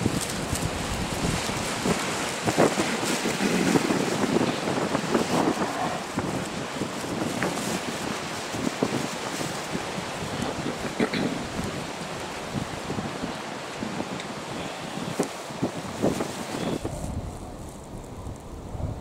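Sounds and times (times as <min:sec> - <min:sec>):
waves on choppy sea: 0:00.0 - 0:17.0
wind buffeting microphone: 0:00.0 - 0:19.0.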